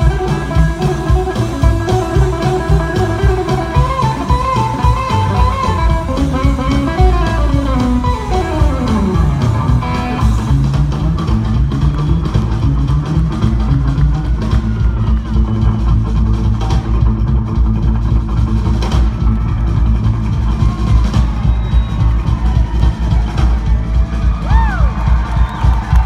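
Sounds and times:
drums: 0.0 - 26.0
electric guitar: 0.0 - 26.0
upright bass: 0.0 - 26.0.

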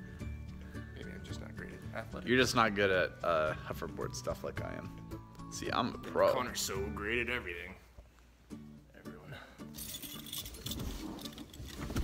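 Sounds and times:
keys jingling: 9.7 - 12.0
clothing rustling: 9.8 - 12.0.

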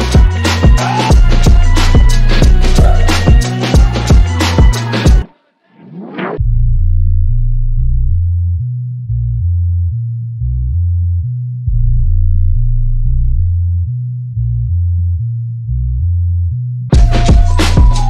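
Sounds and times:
deep synth bass notes: 1.1 - 4.4, 6.3 - 18.0.

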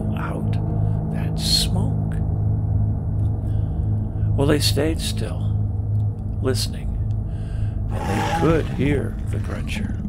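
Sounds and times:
low droning music: 0.0 - 10.0.

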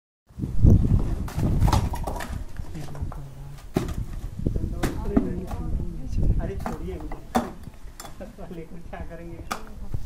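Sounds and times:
bricks knocking together: 6.6 - 8.2.

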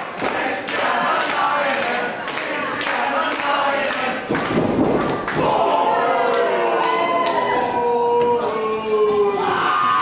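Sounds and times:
crowd chanting and yelling: 0.0 - 10.0.

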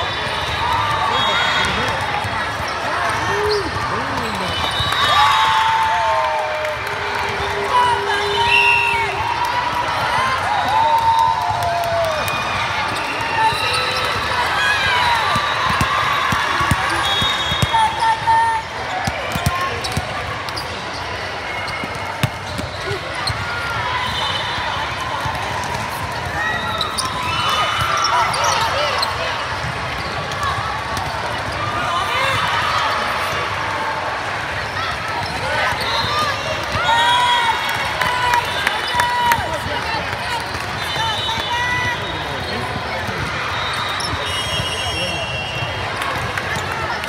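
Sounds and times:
players calling and shouting: 0.0 - 6.3, 7.1 - 47.0
chatter of busy hall: 0.0 - 47.0
crowd cheering: 0.0 - 47.0
volleyball hits: 15.1 - 18.0, 21.8 - 23.4
sneakers squeaking on court: 15.3 - 24.2, 26.5 - 29.2, 34.9 - 36.4.

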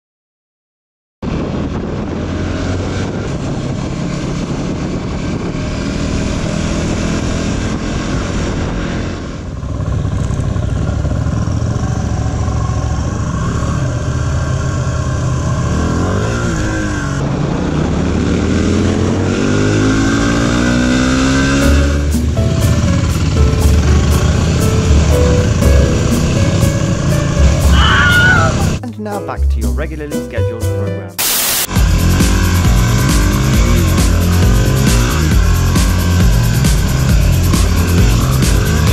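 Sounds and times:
motorcycle engines revving: 1.3 - 28.8, 31.7 - 38.9
background music: 19.6 - 38.9.

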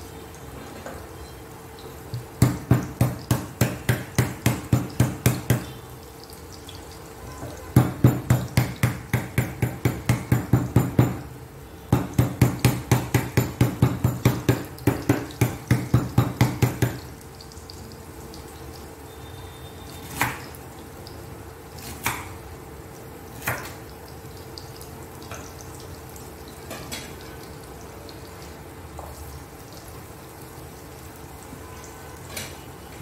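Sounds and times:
knife chopping on wooden board: 2.4 - 5.7, 12.0 - 17.0.

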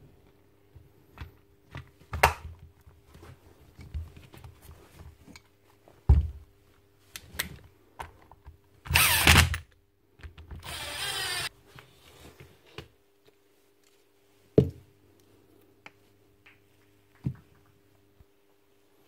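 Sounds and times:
impact wrench running: 10.6 - 11.5.

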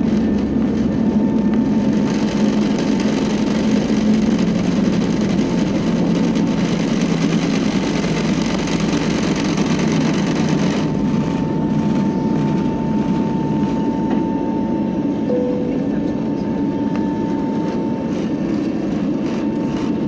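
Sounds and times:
jet engines roaring in cabin: 0.0 - 20.0
runway rumble: 0.0 - 20.0.

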